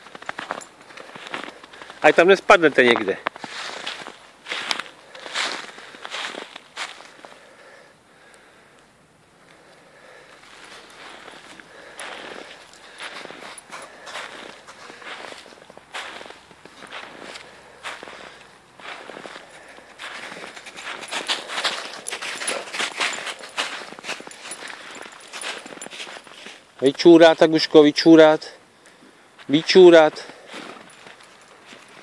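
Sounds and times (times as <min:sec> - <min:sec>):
footsteps crunching through snow: 0:00.0 - 0:07.5, 0:10.3 - 0:27.7, 0:29.4 - 0:32.0.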